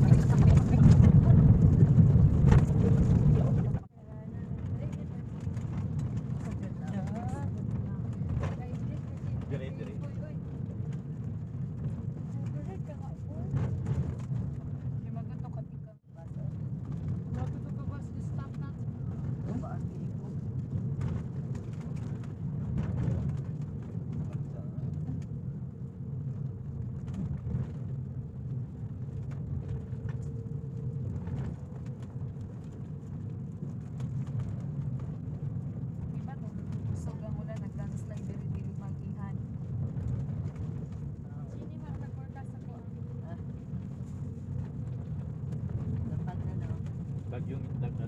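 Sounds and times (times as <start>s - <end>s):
road noise: 0.0s - 48.0s
vehicle engine rumble: 0.0s - 48.0s.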